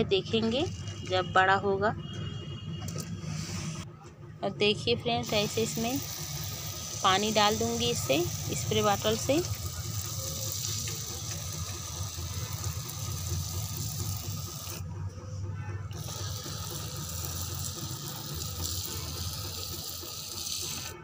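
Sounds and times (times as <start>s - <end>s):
spray bottle hissing: 5.2s - 14.8s, 15.9s - 21.0s.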